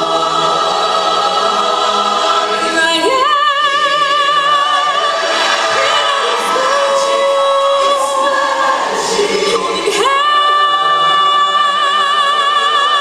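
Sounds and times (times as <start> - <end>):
choir singing: 0.0 - 13.0
woman singing with vibrato: 2.4 - 13.0.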